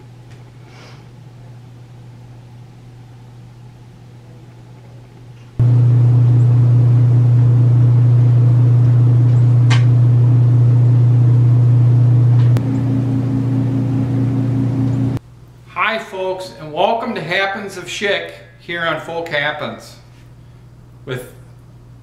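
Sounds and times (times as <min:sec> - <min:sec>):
higher hum: 0:05.6 - 0:15.2
pump humming: 0:05.6 - 0:15.2.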